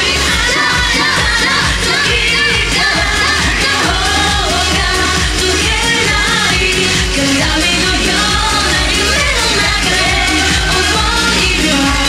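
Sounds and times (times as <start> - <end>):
pop song with singing voice: 0.0 - 12.0.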